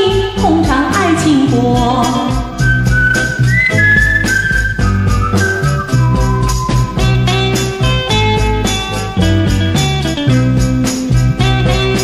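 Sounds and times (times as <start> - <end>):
bass line: 0.0 - 12.0
steady beat: 0.0 - 12.0
high lead melody: 0.7 - 12.0.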